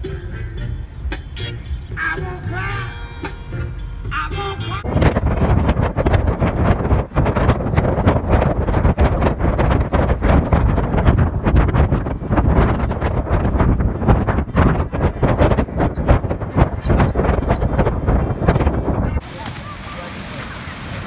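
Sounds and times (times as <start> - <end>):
road and engine rumble: 0.0 - 21.0
wind buffeting microphone: 4.8 - 21.0.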